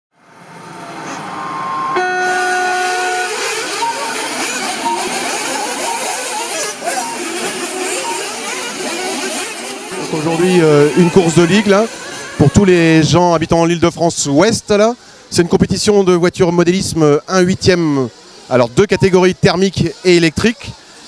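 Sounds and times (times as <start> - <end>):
short beeps: 1.4 - 9.5, 18.9 - 19.2
steady beep: 1.4 - 9.9, 18.9 - 19.4
rc buggy engines revving: 2.2 - 21.0.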